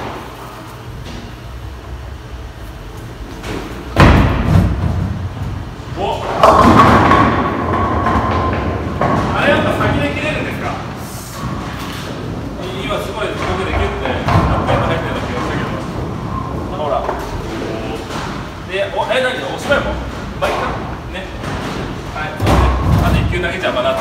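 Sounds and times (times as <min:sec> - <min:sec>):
bowling balls and pins thudding: 0:00.0 - 0:24.0.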